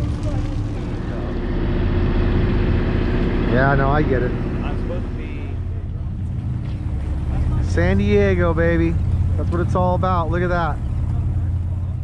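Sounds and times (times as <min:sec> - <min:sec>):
boat engine rumbling: 0:00.0 - 0:12.0
steady hum: 0:00.0 - 0:12.0.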